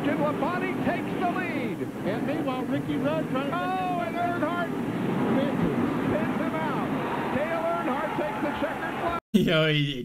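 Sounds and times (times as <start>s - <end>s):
racing engines: 0.0s - 9.2s
commentator speaking: 0.0s - 10.0s
grandstand crowd roar: 3.5s - 9.2s.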